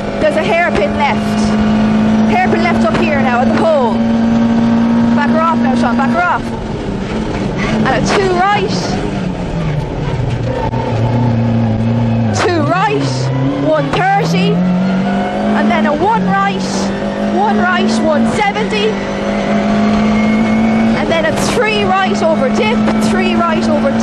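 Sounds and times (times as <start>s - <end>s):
rally car engine revving: 0.0s - 24.0s.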